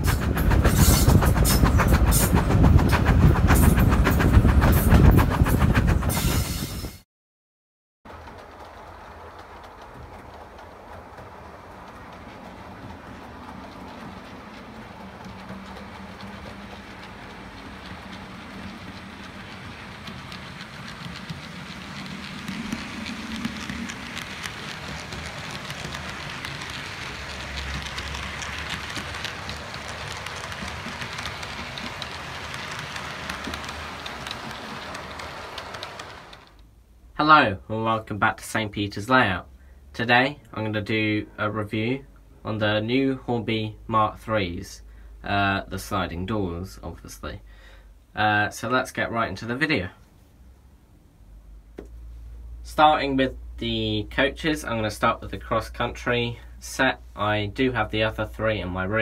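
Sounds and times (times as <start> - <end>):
model train wheels clacking: 0.0 - 6.8, 8.1 - 36.7
model train motor whirr: 16.8 - 36.6.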